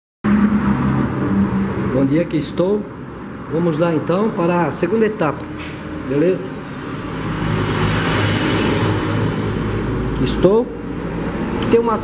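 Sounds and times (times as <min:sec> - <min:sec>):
rushing noise: 0:00.2 - 0:02.3, 0:06.8 - 0:11.6
loud engine-like hum: 0:00.2 - 0:04.6, 0:05.4 - 0:12.0.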